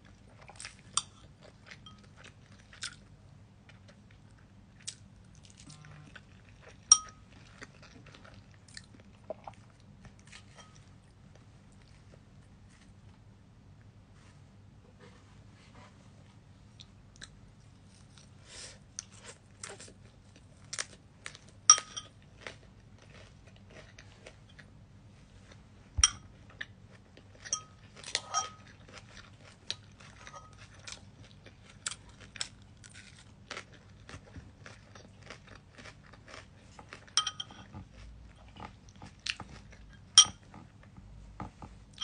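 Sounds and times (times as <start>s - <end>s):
chewing and crunching food: 0.0s - 13.2s, 16.7s - 42.0s
cutlery clinking on ceramic bowl: 1.8s - 2.1s, 6.9s - 7.2s, 10.5s - 10.8s, 21.7s - 22.2s, 26.0s - 26.3s, 27.5s - 28.7s, 37.2s - 37.7s, 40.2s - 40.5s.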